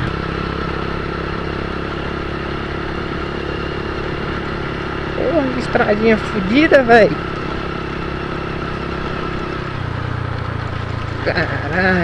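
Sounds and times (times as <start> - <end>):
motorcycle engine running: 0.0 - 12.0
road noise: 0.0 - 12.0
wind: 0.0 - 12.0.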